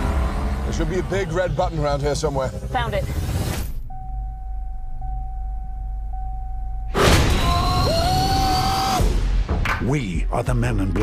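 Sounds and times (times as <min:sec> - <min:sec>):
trailer music: 0:00.0 - 0:11.0
sudden loud hit: 0:06.9 - 0:07.8.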